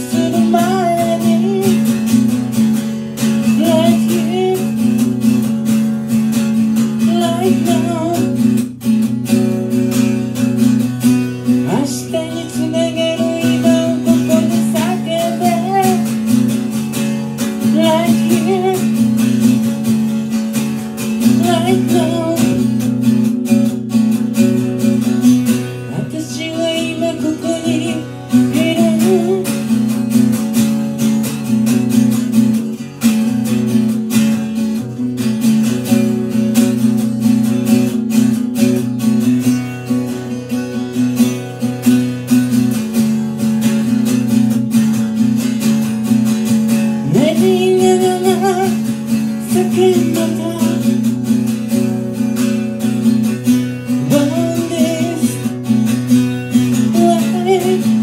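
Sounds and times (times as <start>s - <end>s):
woman singing: 0.0s - 2.6s, 3.2s - 5.3s, 6.8s - 8.8s, 11.4s - 19.7s, 21.0s - 23.0s, 25.2s - 30.2s, 46.8s - 51.8s, 53.8s - 58.0s
acoustic guitar strumming: 0.0s - 58.0s.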